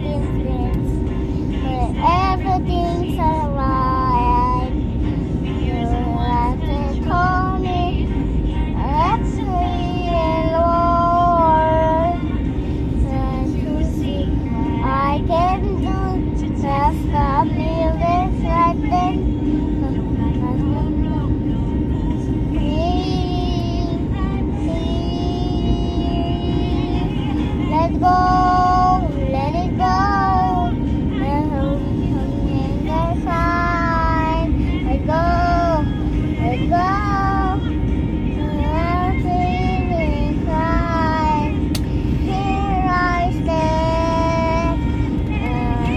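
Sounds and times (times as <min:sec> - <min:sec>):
airliner cabin drone: 0:00.0 - 0:45.9
girl singing: 0:00.0 - 0:45.9.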